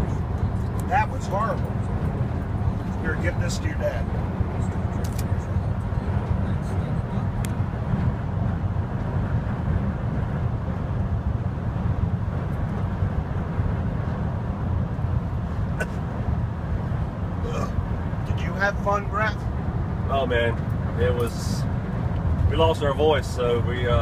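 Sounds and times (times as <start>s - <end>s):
engine and road noise: 0.0s - 24.0s.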